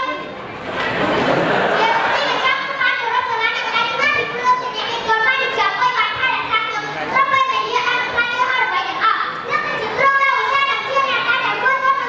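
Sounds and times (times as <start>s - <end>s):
boy speaking into a microphone: 0.0s - 0.4s, 1.6s - 12.0s.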